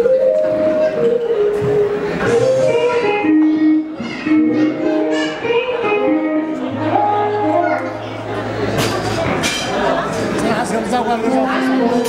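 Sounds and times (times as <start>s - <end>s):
people's voices in a hall: 0.0s - 12.0s.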